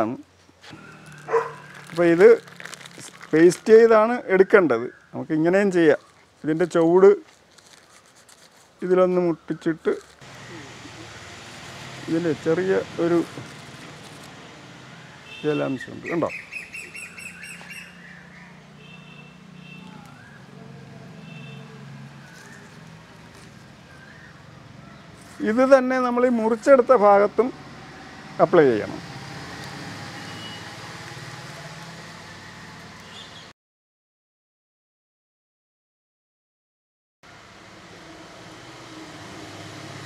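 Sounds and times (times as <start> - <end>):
bird chirping: 14.7 - 20.6, 21.2 - 25.4.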